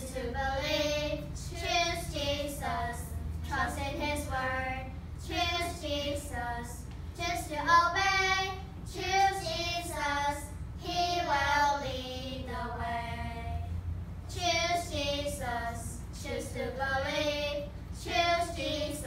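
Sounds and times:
children singing in unison: 14.3 - 19.0.

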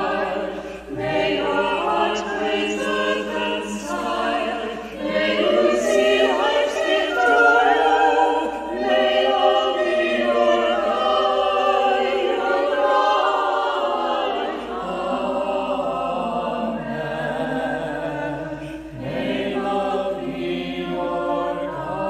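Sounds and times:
group of voices singing: 0.0 - 22.0.

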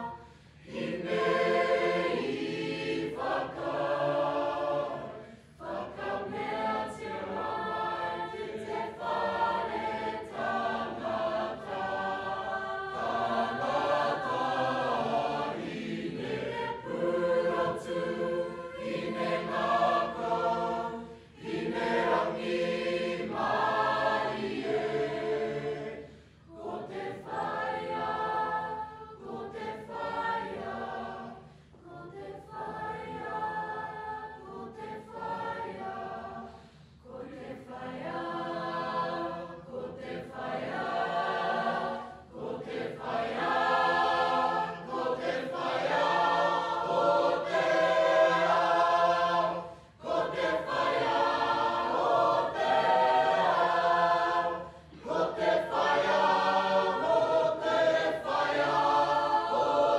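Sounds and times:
mixed-voice choir singing: 0.0 - 59.9.

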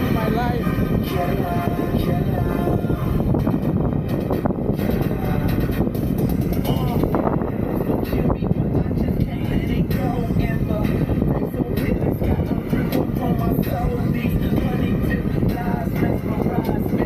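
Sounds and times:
song with singing: 0.0 - 17.0
wind rumble on microphone: 0.0 - 17.0.

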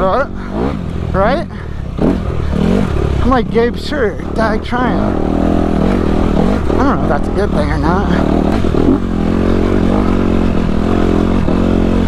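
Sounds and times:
dirt bike engine revving: 0.0 - 12.0.

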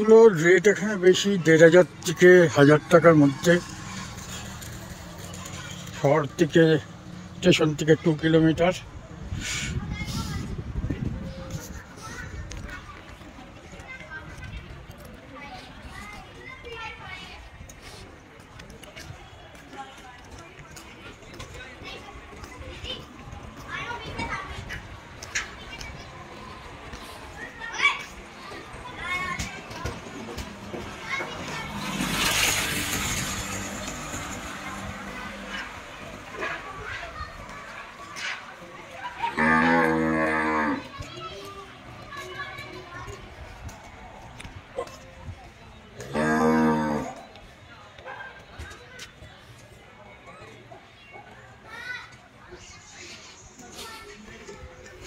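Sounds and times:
distant high-pitched voices: 11.2 - 55.0
cow mooing: 39.4 - 40.8, 46.0 - 47.2.

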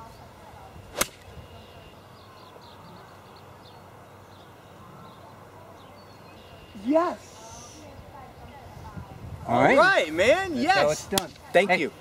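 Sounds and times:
golf club striking ball: 0.9 - 1.3.

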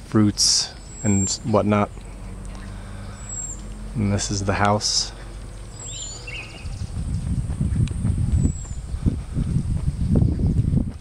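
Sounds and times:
bird chirp: 0.4 - 10.8
wind rumbling on microphone: 0.8 - 11.0.

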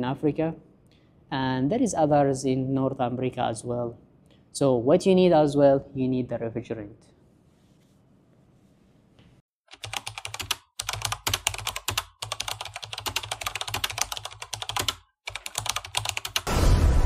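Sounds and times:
keyboard typing: 9.7 - 16.5.

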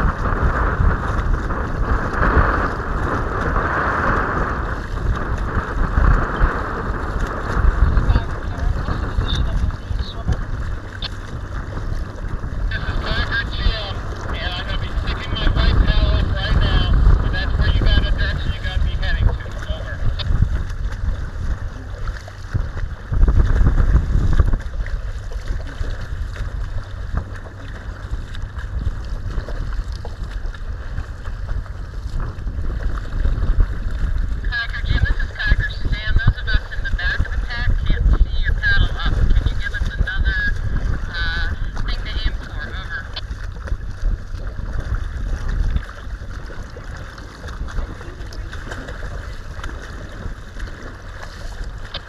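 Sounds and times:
water slapping against hull: 0.0 - 52.0
wind buffeting microphone: 0.0 - 52.0.

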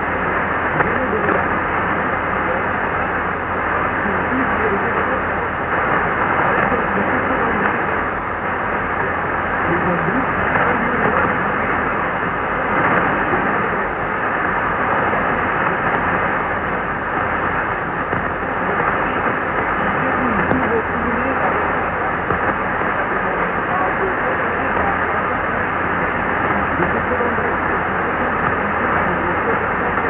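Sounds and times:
muffled radio static hiss: 0.0 - 30.0
faint voice on radio: 0.1 - 30.0.

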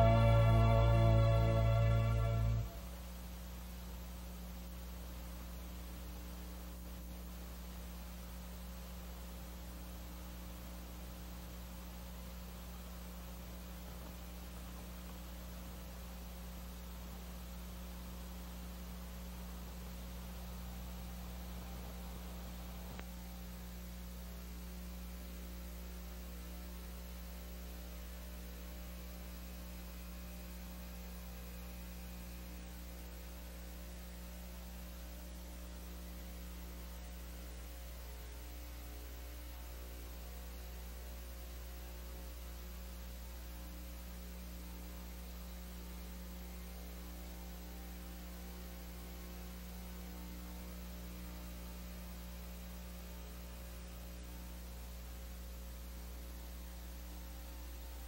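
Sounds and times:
electrical mains hum: 0.0 - 58.0
faint tape hiss: 0.0 - 58.0.

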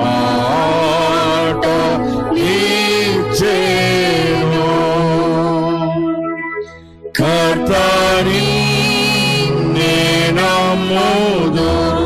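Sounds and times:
hymn singing: 0.0 - 12.0.

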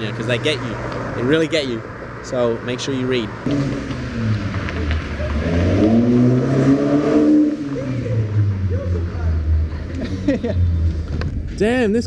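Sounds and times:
low rumble of traffic: 0.0 - 12.0
car engine revving past: 3.3 - 11.4.

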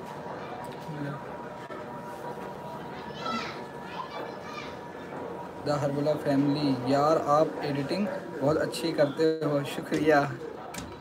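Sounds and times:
faint background voices: 0.0 - 11.0
high-pitched child-like voice: 3.0 - 4.8.

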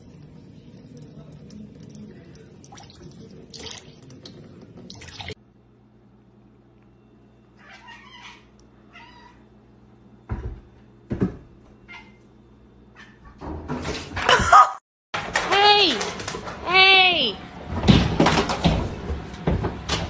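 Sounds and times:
cat meowing: 7.6 - 9.4.

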